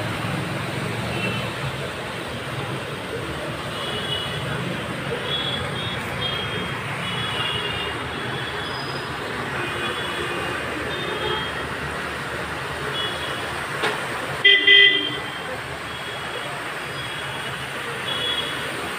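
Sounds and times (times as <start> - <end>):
vehicles driving through floodwater: 0.0 - 18.9
loud vehicle horn blast: 14.4 - 15.3.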